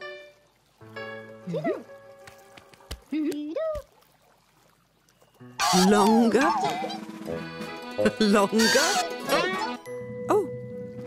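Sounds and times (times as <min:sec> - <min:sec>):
bright music: 0:05.4 - 0:11.0
puppet gliding ooh call: 0:05.6 - 0:07.1.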